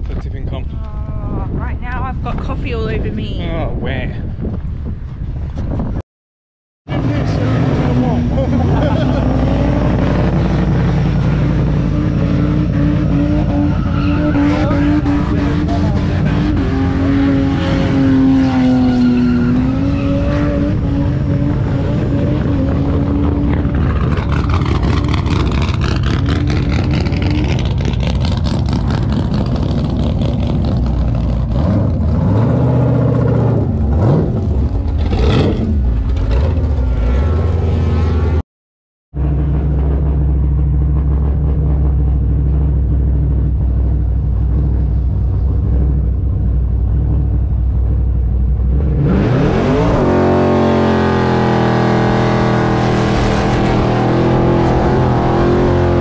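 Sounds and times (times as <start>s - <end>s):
car engines revving: 6.9s - 38.4s, 39.2s - 56.0s.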